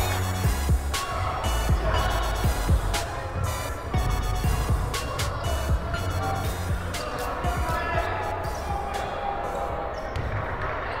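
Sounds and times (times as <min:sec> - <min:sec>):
music: 0:00.0 - 0:10.6
voices: 0:00.0 - 0:11.0
ball bouncing on wooden court: 0:10.1 - 0:10.7.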